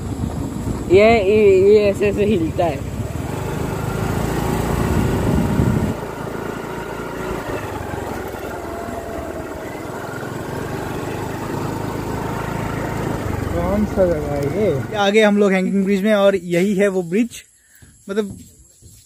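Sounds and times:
motor scooter engine rumble: 0:00.0 - 0:18.9.

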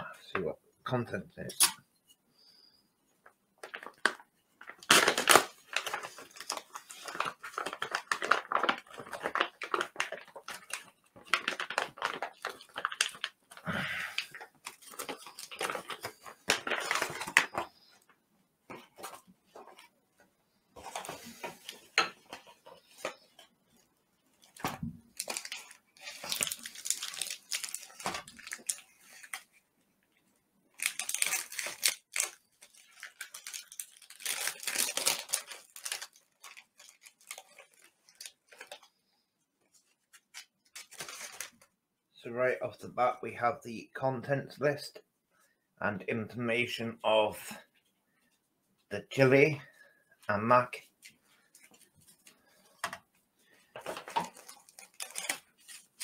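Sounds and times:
plastic crinkling and rustling: 0:03.6 - 0:19.9, 0:20.8 - 0:29.6, 0:30.7 - 0:41.8, 0:49.8 - 0:56.0
knife cutting plastic bag: 0:54.1 - 0:56.0.

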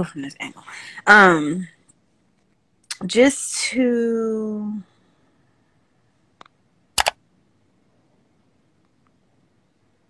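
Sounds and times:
sharp double click: 0:07.0 - 0:07.2.

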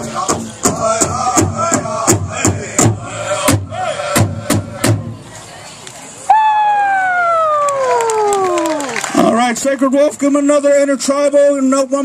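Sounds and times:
man calling over loudspeaker: 0:09.2 - 0:12.0
man speaking over loudspeaker: 0:09.2 - 0:12.0.

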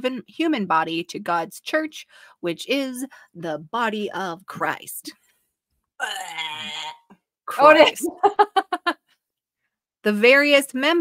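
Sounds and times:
person moaning: 0:06.0 - 0:07.0.

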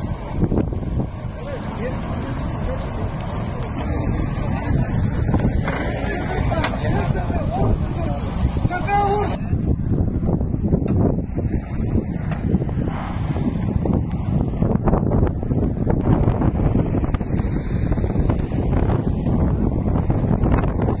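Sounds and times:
wind buffeting microphone: 0:00.0 - 0:21.0.

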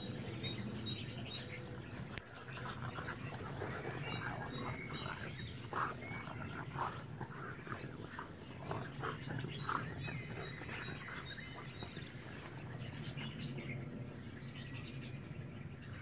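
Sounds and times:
birds chirping: 0:00.0 - 0:16.0
dogs playing rough: 0:01.8 - 0:14.0.

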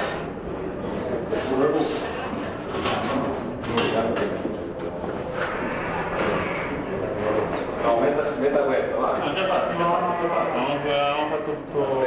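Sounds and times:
people talking indistinctly: 0:01.1 - 0:12.0.

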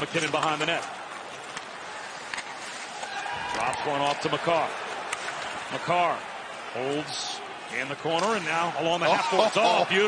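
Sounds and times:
skating on ice: 0:00.0 - 0:06.0.

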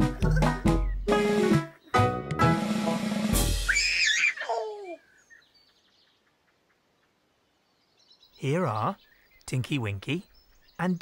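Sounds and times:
faint bird chirps: 0:03.7 - 0:11.0.

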